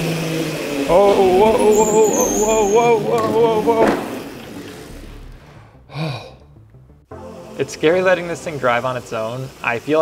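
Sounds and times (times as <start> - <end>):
electric kart motor and tyres: 0.0 - 5.4
man exclaiming: 0.9 - 4.1.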